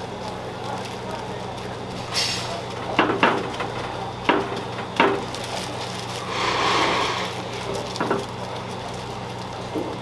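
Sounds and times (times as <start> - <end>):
rice sizzling on hot plate: 0.0 - 10.0.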